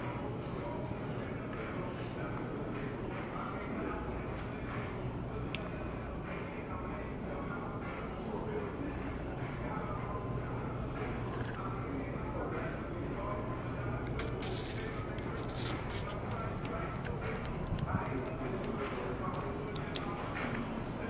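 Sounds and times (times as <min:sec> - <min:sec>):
distant voices: 0:00.0 - 0:21.0
faint music: 0:00.0 - 0:21.0
steady low hum: 0:00.0 - 0:21.0.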